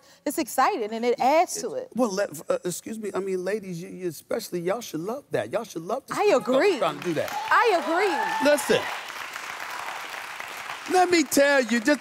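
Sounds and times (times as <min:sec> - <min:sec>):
audience applauding: 0:06.5 - 0:12.0.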